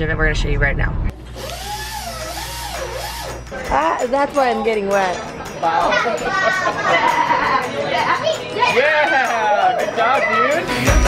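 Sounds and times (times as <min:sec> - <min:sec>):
dental drill whining: 0:01.3 - 0:03.8.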